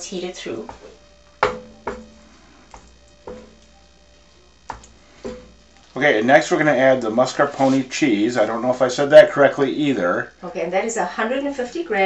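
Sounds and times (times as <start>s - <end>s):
utensil knocking on a skillet: 0.6s - 5.9s.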